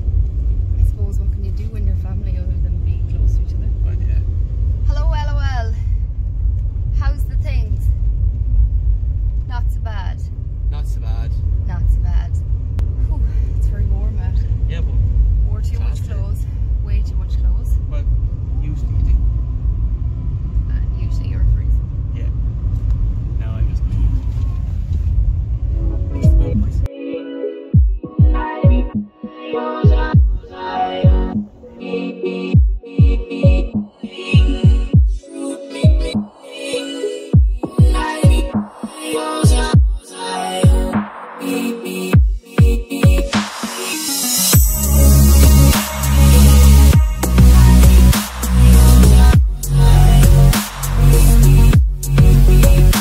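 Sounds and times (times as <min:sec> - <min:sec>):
car road rumble inside cabin: 0:00.0 - 0:26.9, 0:44.6 - 0:53.0.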